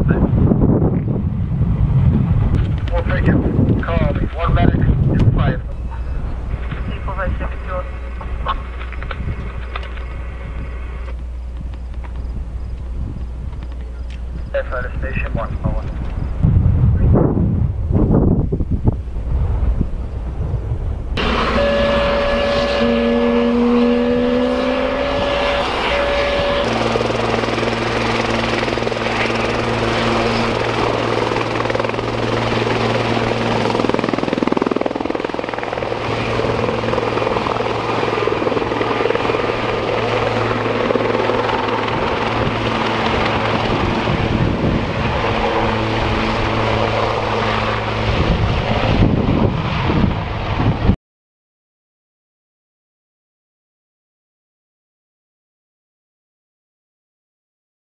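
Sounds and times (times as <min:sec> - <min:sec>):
steady low hum: 0:00.0 - 0:49.4
helicopter turbine and rotor drone: 0:00.0 - 0:51.0
whining tones: 0:21.1 - 0:48.9.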